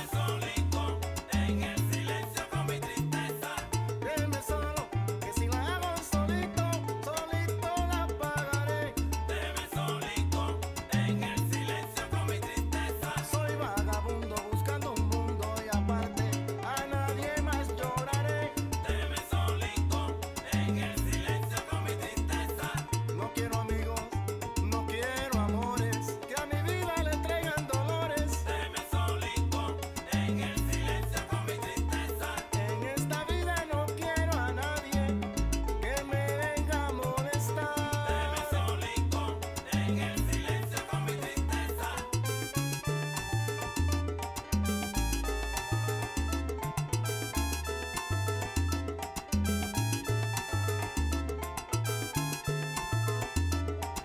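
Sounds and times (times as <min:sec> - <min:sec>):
instrumental salsa music: 0:00.0 - 0:54.0.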